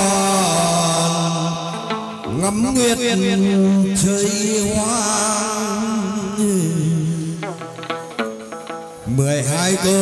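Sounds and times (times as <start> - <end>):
ritual singing: 0.0 - 8.0, 9.0 - 10.0
instrumental accompaniment: 0.0 - 10.0.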